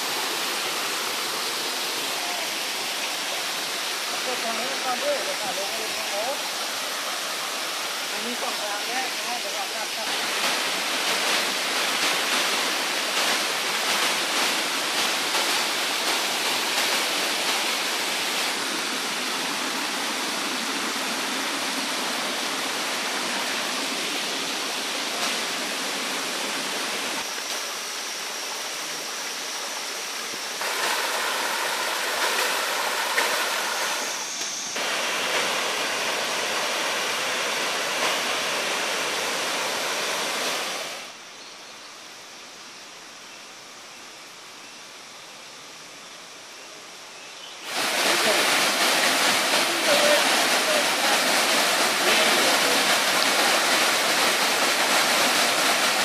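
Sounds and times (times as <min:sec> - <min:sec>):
waterfall cascading: 0:00.0 - 0:56.0.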